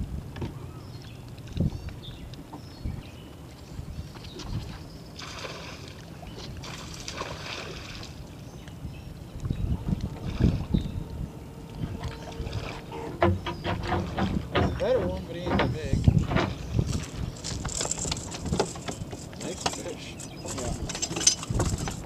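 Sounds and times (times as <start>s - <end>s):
wind rumbling on microphone: 0.0s - 22.0s
low buffeting knocks: 9.8s - 17.3s.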